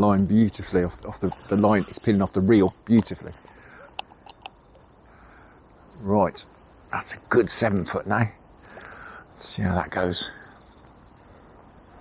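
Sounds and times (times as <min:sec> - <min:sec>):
sharp clicks: 0:03.9 - 0:04.6.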